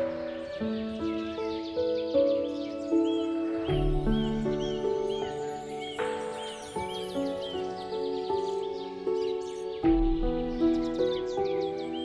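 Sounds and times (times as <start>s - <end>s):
bird chirping: 0.0s - 12.0s
slow piano music: 0.0s - 12.0s.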